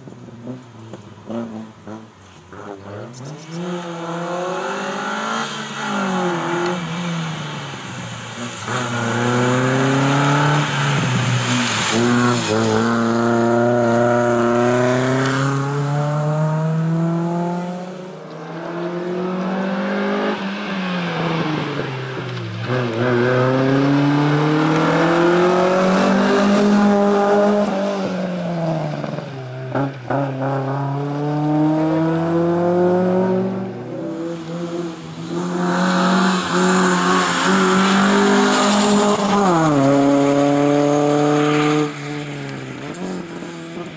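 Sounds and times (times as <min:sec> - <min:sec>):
car engine revving hard: 0:08.5 - 0:18.0, 0:22.6 - 0:43.9.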